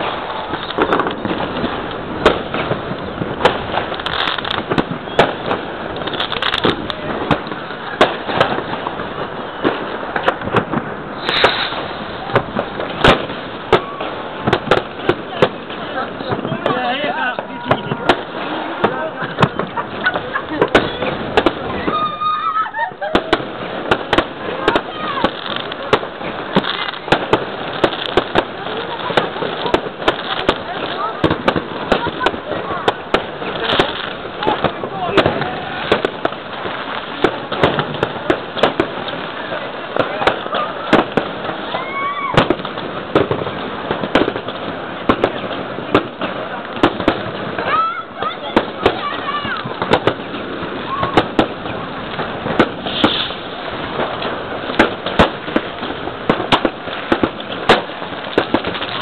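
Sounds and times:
fireworks bangs and crackling pops: 0:00.0 - 0:59.0.

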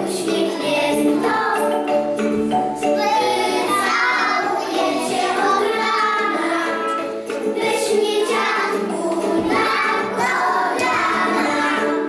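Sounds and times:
musical accompaniment: 0:00.0 - 0:12.0
toddlers singing: 0:00.0 - 0:12.0.

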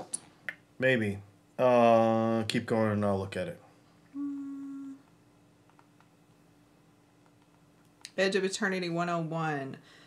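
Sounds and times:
person humming: 0:04.1 - 0:05.1.

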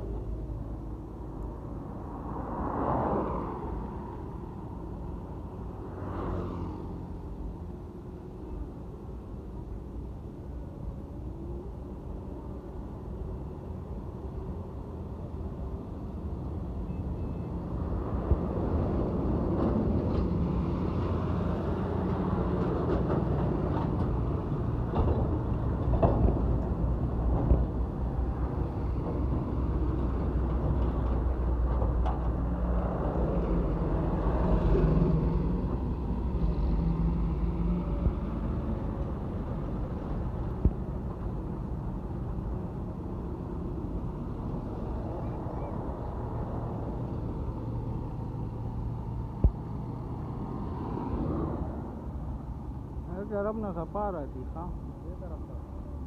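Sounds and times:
trucks driving past: 0:00.0 - 0:56.0.

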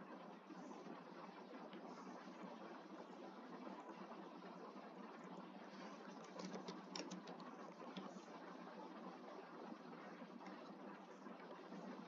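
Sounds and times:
keyboard key clicks: 0:06.2 - 0:08.1.

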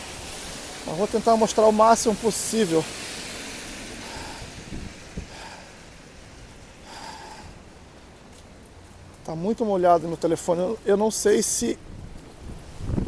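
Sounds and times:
car passing on wet road: 0:00.0 - 0:13.0
rain: 0:00.0 - 0:13.0
wind: 0:00.0 - 0:13.0.

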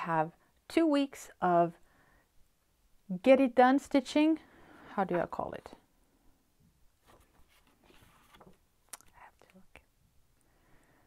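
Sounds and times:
paper rustling: 0:07.0 - 0:08.7.

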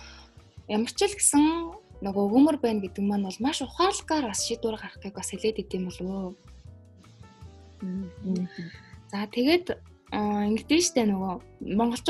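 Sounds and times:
background music with bass: 0:00.0 - 0:12.0
person speaking: 0:07.8 - 0:09.4.

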